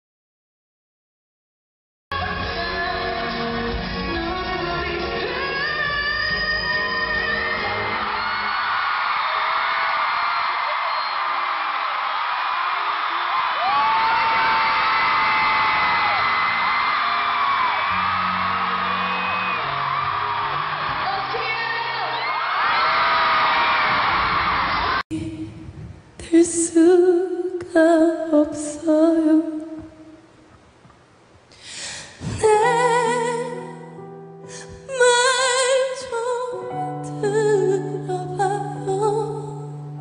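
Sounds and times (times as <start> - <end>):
woman singing: 2.1 - 8.2, 26.2 - 30.2, 32.2 - 40.0
band music: 2.1 - 8.4, 15.7 - 22.2
crowd screaming and cheering: 6.4 - 25.0.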